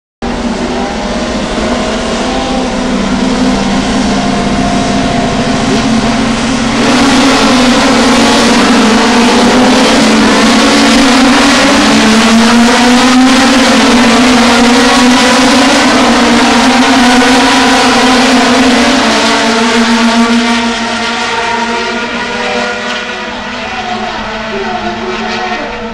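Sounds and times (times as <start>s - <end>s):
race car engines accelerating: 0.2s - 25.9s.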